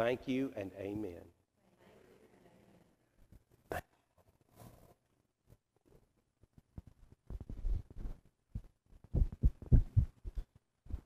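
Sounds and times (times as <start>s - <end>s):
footsteps: 6.5s - 11.0s.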